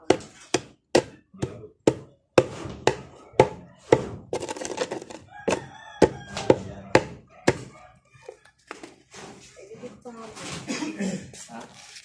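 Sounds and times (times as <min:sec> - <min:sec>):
pestle knocking in mortar: 0:00.0 - 0:07.7
pestle grinding resin in mortar: 0:00.0 - 0:09.4.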